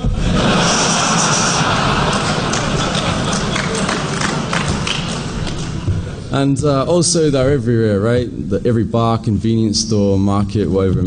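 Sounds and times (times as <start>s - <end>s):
audience laughing: 0.0s - 6.3s
audience applauding: 0.4s - 5.9s.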